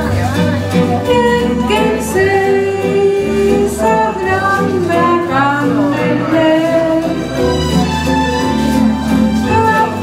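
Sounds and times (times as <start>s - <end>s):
backing track with bass line: 0.0s - 10.0s
woman singing karaoke: 1.0s - 7.3s, 9.4s - 10.0s.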